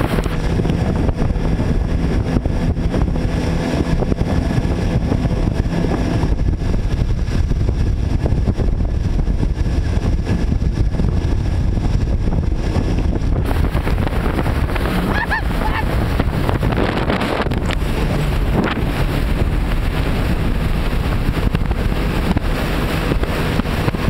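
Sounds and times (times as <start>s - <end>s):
churning wake rushing: 0.0s - 24.0s
watercraft engine drone: 0.0s - 24.0s
wind buffeting microphone: 0.0s - 24.0s.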